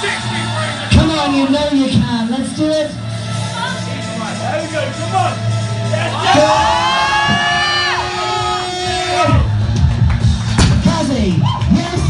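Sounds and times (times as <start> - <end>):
people yelling encouragement: 5.9 - 9.5.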